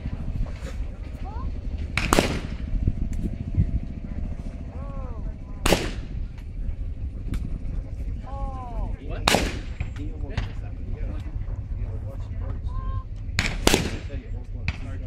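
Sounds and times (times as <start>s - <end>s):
shotgun shots: 2.0s - 2.7s, 5.6s - 6.2s, 9.2s - 10.5s, 13.4s - 15.0s.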